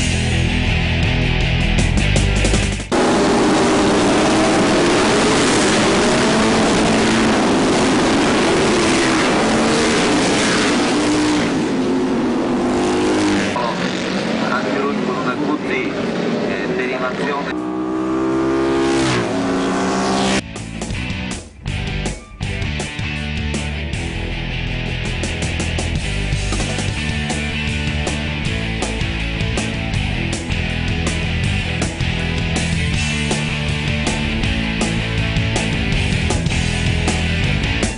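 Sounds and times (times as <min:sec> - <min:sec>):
racing motorcycles revving: 0:02.4 - 0:20.4, 0:24.9 - 0:37.9
motorcycle engine revving up: 0:02.5 - 0:20.4.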